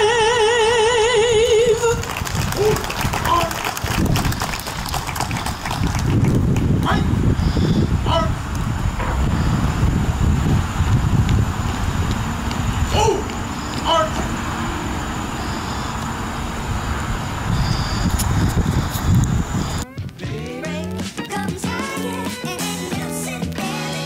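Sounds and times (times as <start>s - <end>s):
low rumble: 1.2s - 19.8s
scattered clapping: 1.8s - 6.9s.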